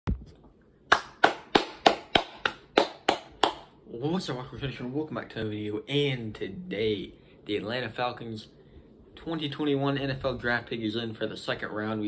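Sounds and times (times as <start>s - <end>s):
hand clapping: 0.9s - 3.7s.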